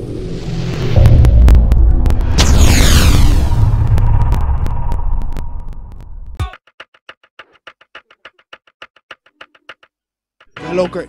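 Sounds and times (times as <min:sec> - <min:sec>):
deep bass boom: 0:00.9 - 0:06.4
bright downward sweep: 0:02.1 - 0:05.6.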